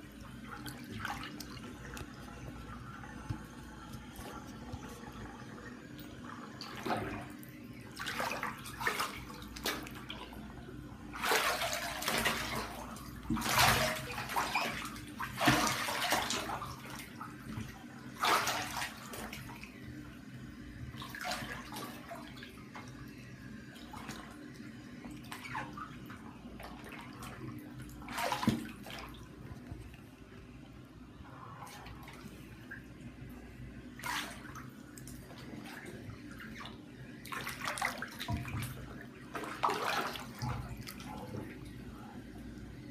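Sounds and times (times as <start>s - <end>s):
water sloshing in a bathtub: 0.0s - 42.9s.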